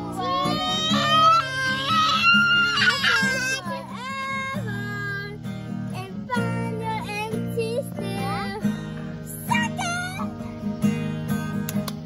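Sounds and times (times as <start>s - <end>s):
boy singing high-pitched: 0.0s - 8.7s, 9.3s - 10.3s
strummed acoustic guitar: 0.0s - 12.0s.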